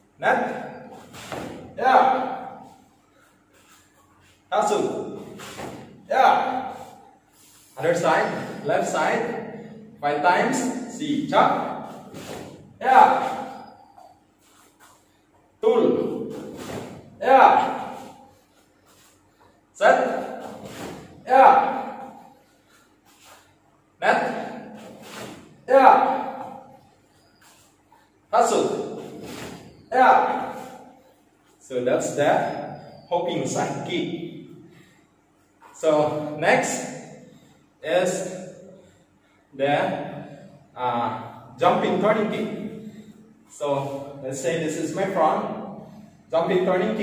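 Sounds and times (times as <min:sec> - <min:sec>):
man shouting kiai: 0:00.2 - 0:02.7, 0:04.6 - 0:07.0, 0:12.8 - 0:13.7, 0:15.6 - 0:18.2, 0:19.8 - 0:22.3, 0:24.0 - 0:26.6, 0:29.9 - 0:30.8
loud martial arts shout: 0:17.2 - 0:18.0, 0:21.3 - 0:22.1.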